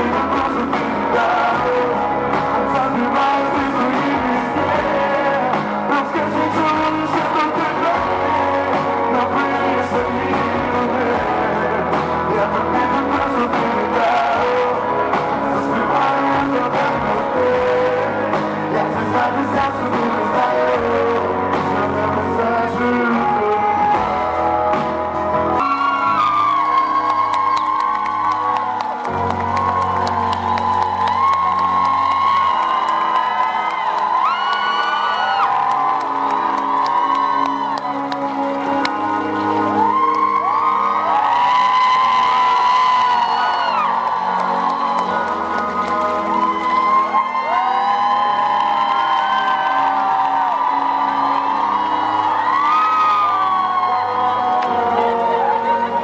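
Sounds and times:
bass: 0.0 - 56.0
guitar: 0.0 - 56.0
person singing: 0.0 - 56.0
audience whooping and cheering: 23.3 - 56.0.

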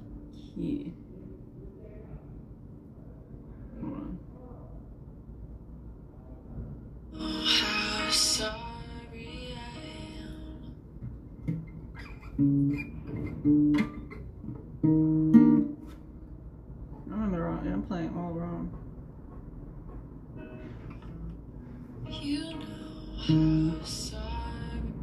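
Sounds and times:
acoustic guitar strumming chords: 7.2 - 16.0, 20.4 - 25.0.

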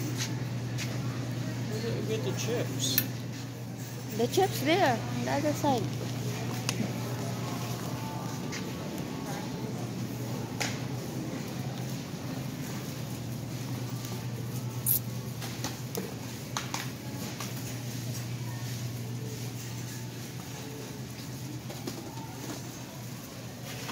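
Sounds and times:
constant low hum: 0.0 - 23.9
shopping cart rolling rattle: 8.2 - 15.6, 16.2 - 23.9.

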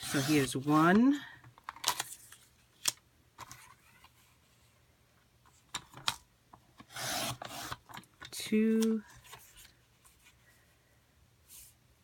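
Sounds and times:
paper trimmer blade cutting: 0.0 - 0.5, 6.9 - 7.8.

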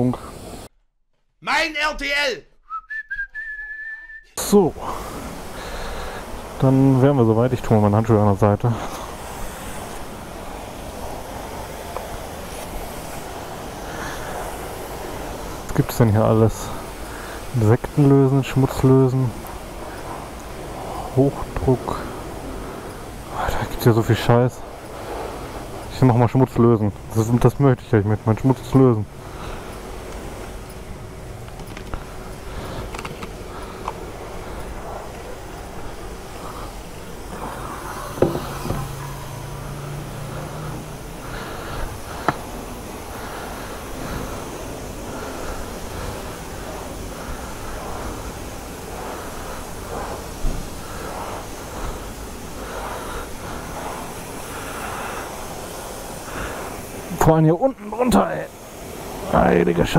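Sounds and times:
pressure washer water jet hissing: 0.0 - 0.7, 4.4 - 59.9.

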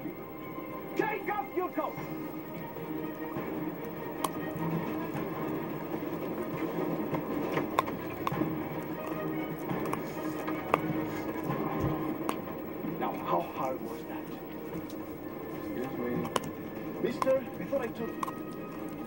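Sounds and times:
television background music: 0.0 - 19.0
dog gnawing chew stick: 2.0 - 19.0.

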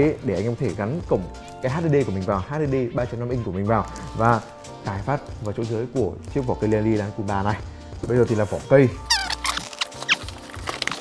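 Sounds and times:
styrofoam squeaking against cardboard: 8.2 - 11.0.

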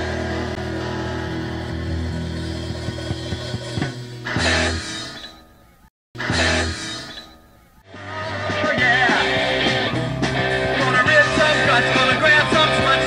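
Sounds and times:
electric guitar chords: 0.0 - 5.0, 7.9 - 13.0.

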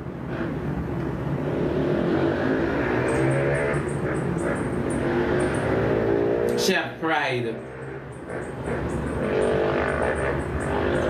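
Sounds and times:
engine humming steadily: 0.0 - 11.0.

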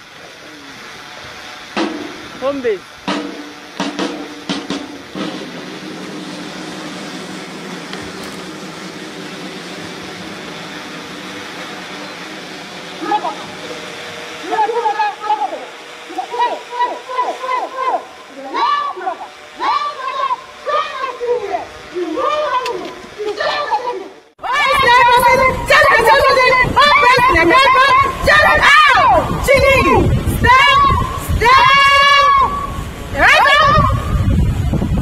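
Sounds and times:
steady hiss: 0.0 - 35.0
person calling out loudly: 13.0 - 13.6, 14.4 - 34.0.

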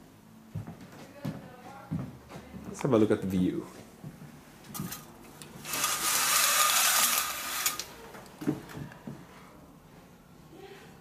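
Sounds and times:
blind slats rattling: 4.7 - 8.0
blind cord clicks: 4.7 - 8.4.

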